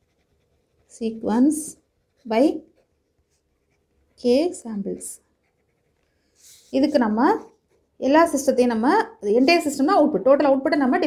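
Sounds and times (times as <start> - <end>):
ballpoint pen writing on paper: 0.0 - 7.4
person speaking: 0.9 - 2.7, 4.2 - 5.2, 6.6 - 11.0.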